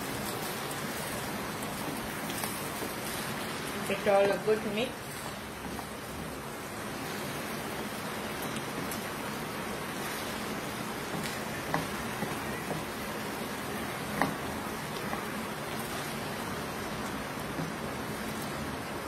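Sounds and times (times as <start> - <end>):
food sizzling in a frying pan: 0.0 - 19.0
wooden spatula knocking pan: 10.0 - 16.1.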